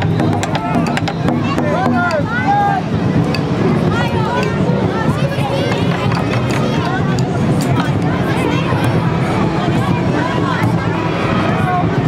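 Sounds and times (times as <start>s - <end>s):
children's voices: 0.0s - 12.0s
crowd chatter: 0.0s - 12.0s.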